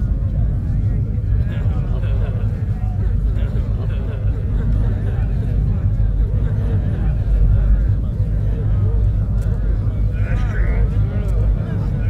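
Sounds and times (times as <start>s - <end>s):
low rumble: 0.0s - 12.0s
murmuring voices: 0.0s - 12.0s.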